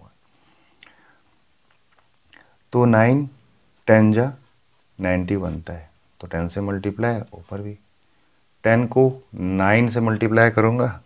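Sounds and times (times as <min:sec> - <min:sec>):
low room hiss: 0:00.0 - 0:11.0
faint breathing: 0:00.2 - 0:01.4.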